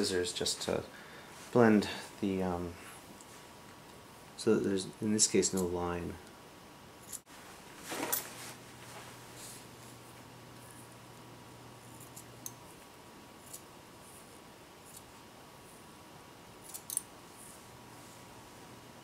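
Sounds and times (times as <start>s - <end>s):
faint low hum: 0.0s - 19.0s
scissors snipping hair: 11.9s - 12.6s, 13.4s - 13.7s, 14.8s - 15.1s, 16.6s - 17.1s.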